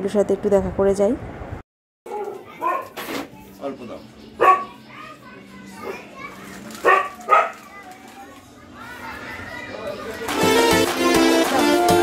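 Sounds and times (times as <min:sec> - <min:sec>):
dog barking: 0:02.1 - 0:03.0, 0:04.4 - 0:04.8, 0:06.8 - 0:07.7.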